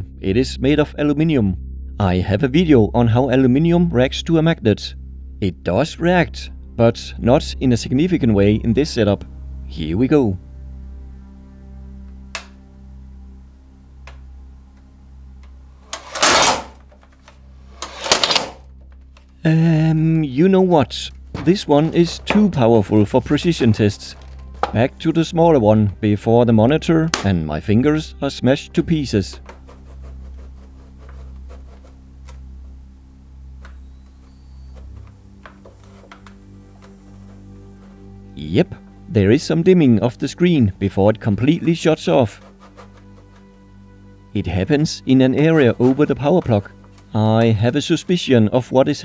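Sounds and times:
electrical hum: 0.0s - 49.0s
sustained background music notes: 0.0s - 49.0s.

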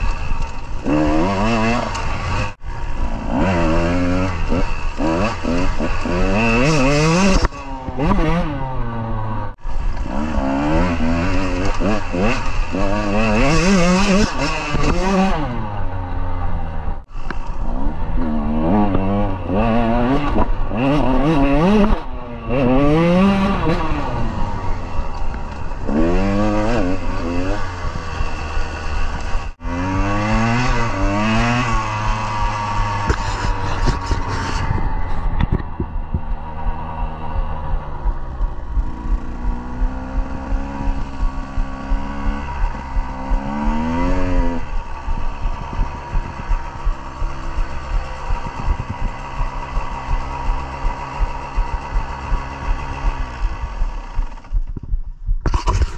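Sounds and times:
dirt bike engine revving: 0.0s - 54.8s
wind on microphone: 31.4s - 55.9s.

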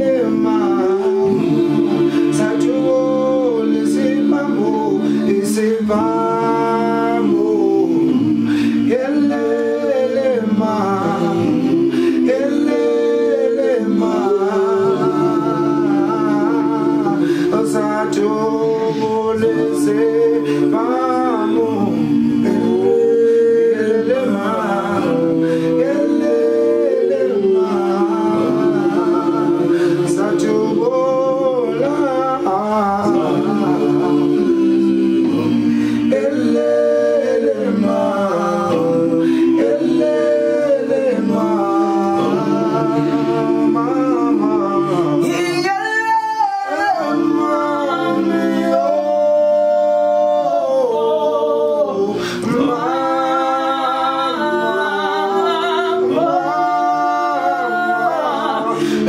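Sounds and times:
men singing a cappella: 0.0s - 59.0s.

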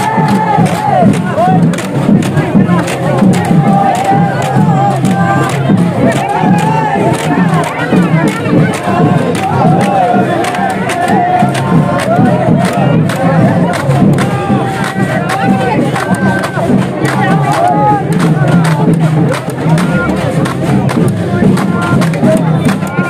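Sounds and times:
folk music: 0.0s - 23.0s
men shouting and chanting: 0.0s - 23.0s
sticks clacking against bamboo poles: 0.0s - 23.0s.

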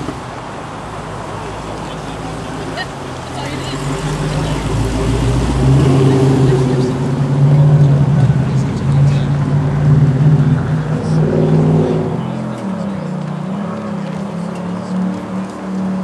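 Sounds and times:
car engine exhaust rumble: 0.0s - 16.0s.

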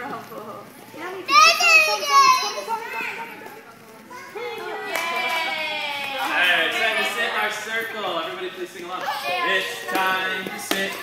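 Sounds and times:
children's voices: 1.0s - 3.5s, 4.1s - 5.2s, 9.0s - 11.0s.

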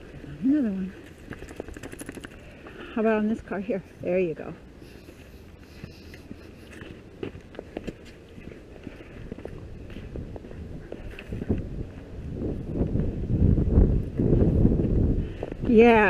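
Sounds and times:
footsteps on dirt: 4.6s - 13.4s
low rumbling noise: 8.3s - 16.0s.

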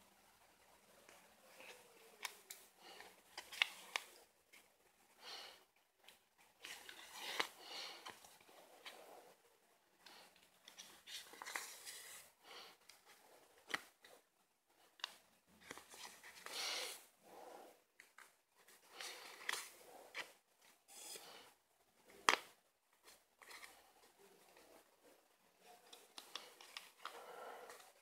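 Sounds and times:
hands handling paper card: 3.3s - 4.7s.

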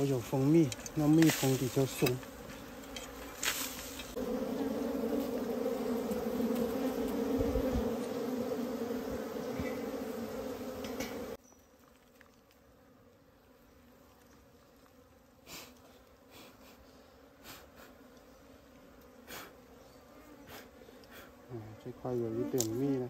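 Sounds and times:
bees buzzing: 0.0s - 11.4s, 12.6s - 23.0s.

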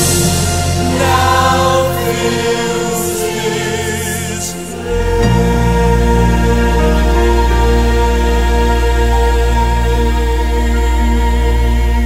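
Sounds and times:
choir singing held notes: 0.0s - 12.0s
sustained chords: 0.0s - 12.0s.

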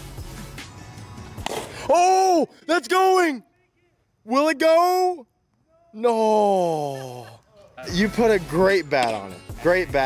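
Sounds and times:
background music: 0.0s - 2.4s, 7.7s - 10.0s.

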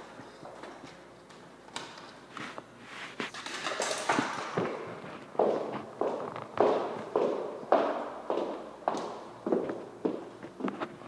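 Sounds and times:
footsteps on hardwood floor: 4.1s - 11.0s.

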